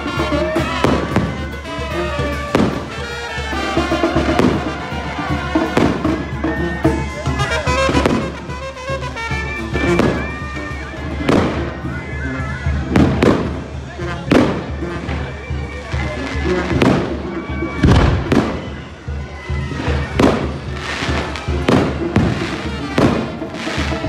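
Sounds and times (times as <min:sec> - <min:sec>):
fireworks bangs with echo: 0:00.0 - 0:09.2, 0:09.8 - 0:12.1, 0:12.8 - 0:24.0
music with steady bass: 0:00.0 - 0:24.0.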